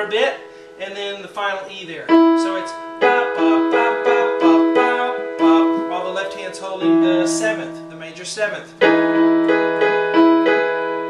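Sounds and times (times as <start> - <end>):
piano chord repeated: 2.1 - 11.0.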